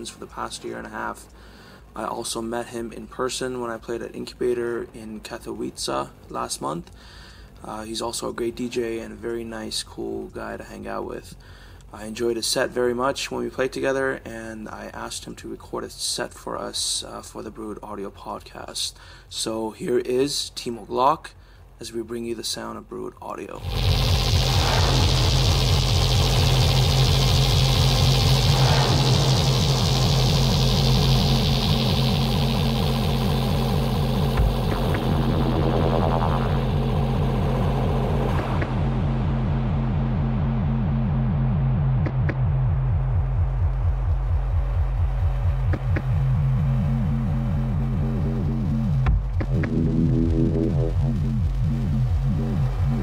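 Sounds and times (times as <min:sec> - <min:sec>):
hissing noise sweep: 0:23.6 - 0:40.2, 0:42.0 - 0:53.0
techno low pulse: 0:23.6 - 0:53.0.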